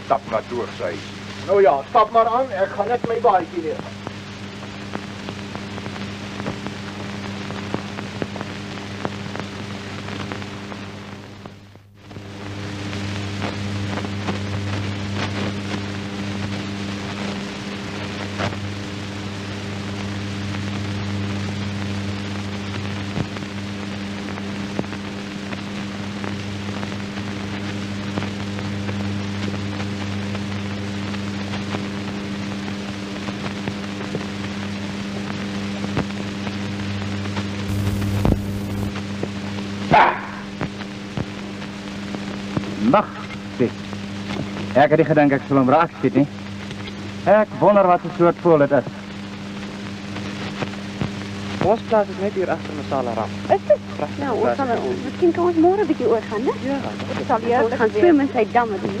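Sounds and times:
faint crackles: 37.6s - 39.2s
hiss: 37.7s - 38.9s
film soundtrack hum: 37.7s - 39.2s.

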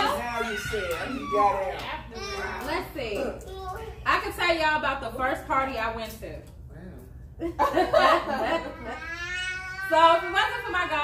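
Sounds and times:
women laughing: 7.4s - 9.0s.

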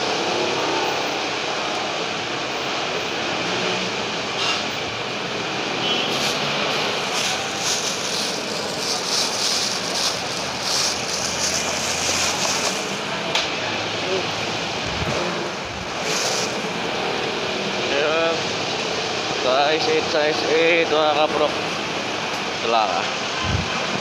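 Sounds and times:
motorcycles passing: 0.0s - 22.1s.

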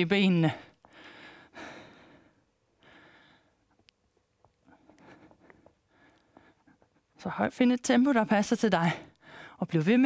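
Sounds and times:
woman breathing from exertion: 0.8s - 3.7s, 9.1s - 9.6s.

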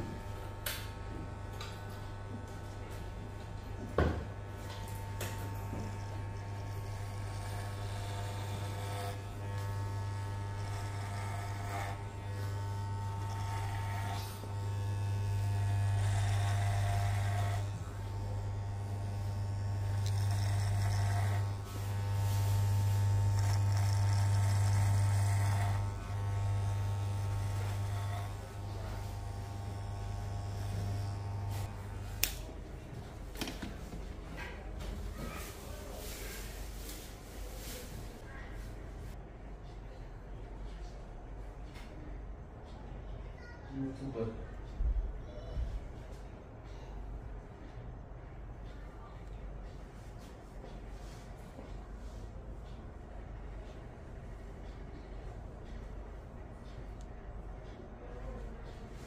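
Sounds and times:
electric hair clippers buzzing: 0.0s - 32.5s.

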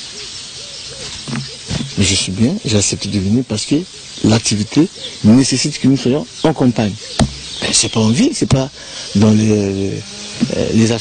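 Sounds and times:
bird hooting faintly: 0.0s - 11.0s.

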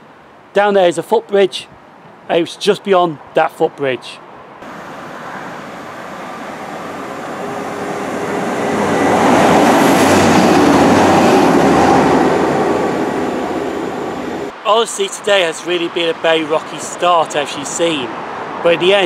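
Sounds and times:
diesel train passing: 4.6s - 14.9s.

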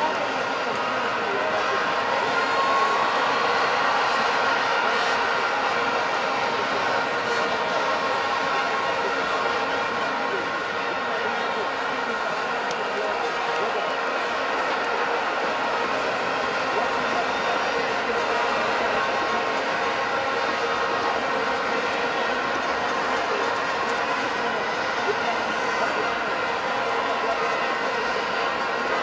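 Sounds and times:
stadium crowd din: 0.0s - 29.0s.

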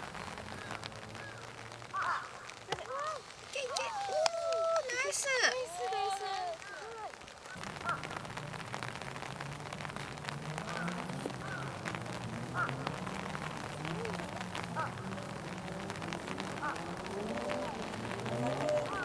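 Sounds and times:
distant voices murmuring: 0.0s - 19.0s
light rain ticking: 0.0s - 19.0s.

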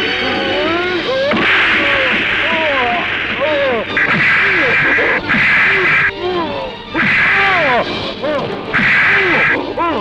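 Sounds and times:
voices crying out: 0.0s - 10.0s
harsh noisy blast: 1.3s - 6.2s, 8.8s - 9.6s.

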